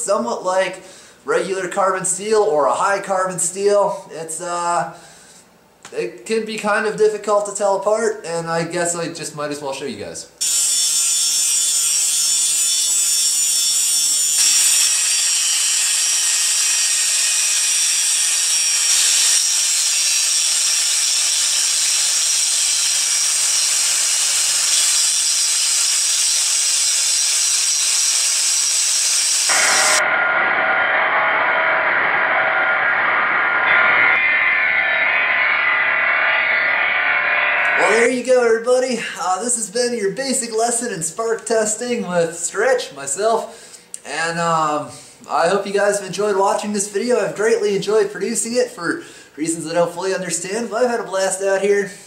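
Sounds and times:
angle grinder grinding steel: 10.4s - 38.0s.

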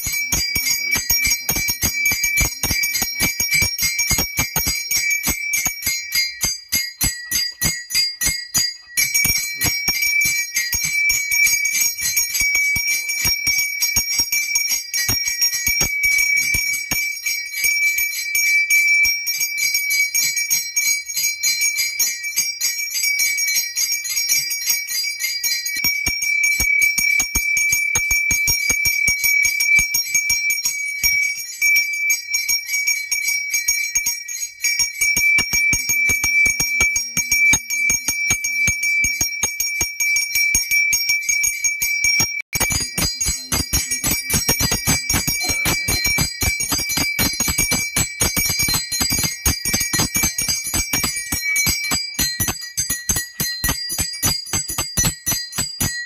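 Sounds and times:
hand bell ringing rapidly: 0.0s - 56.0s.

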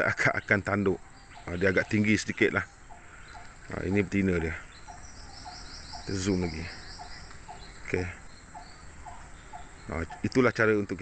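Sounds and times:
insects chirping faintly: 0.0s - 11.0s.

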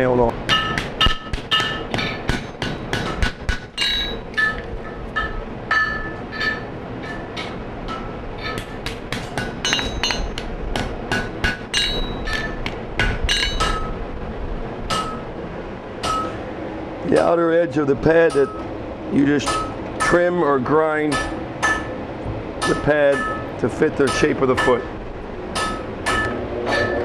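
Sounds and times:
hammer striking horseshoe on anvil: 0.5s - 14.0s, 14.9s - 15.2s, 16.0s - 16.4s, 17.1s - 17.4s, 18.3s - 18.7s, 19.4s - 20.2s, 21.0s - 22.0s, 22.6s - 24.9s, 25.5s - 27.0s.

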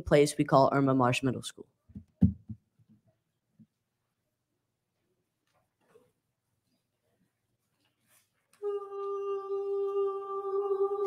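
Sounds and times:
choir singing a held note: 8.6s - 11.0s.

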